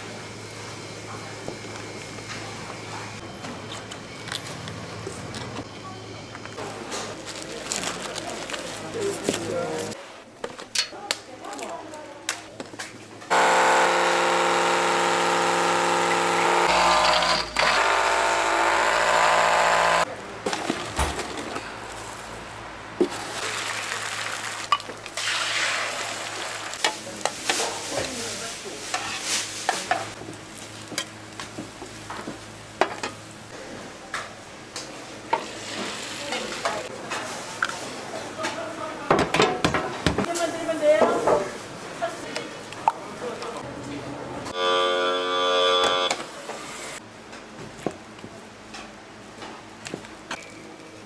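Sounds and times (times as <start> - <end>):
loud machine whine: 13.3 - 20.1.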